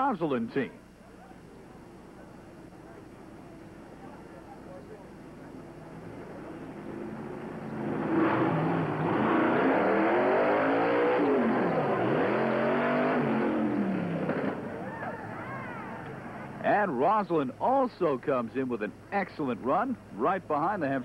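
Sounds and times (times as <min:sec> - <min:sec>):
racing car engine revving: 0:06.7 - 0:14.8.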